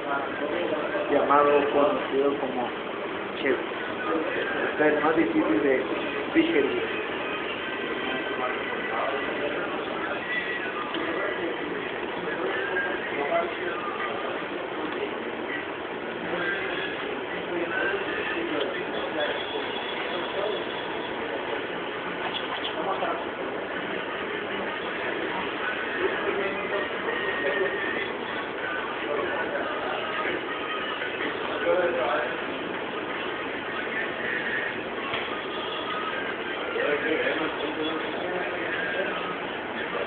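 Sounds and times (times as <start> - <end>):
indistinct chatter of voices: 0.0 - 40.0.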